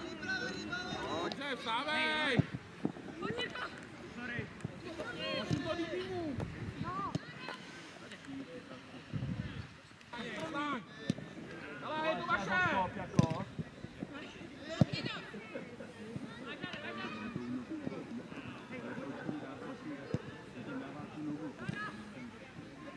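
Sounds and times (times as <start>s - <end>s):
players shouting: 3.2s - 7.6s.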